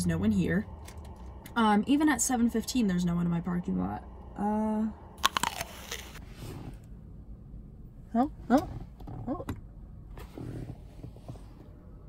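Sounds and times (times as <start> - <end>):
sharp crunchy clicks: 5.2 - 6.2.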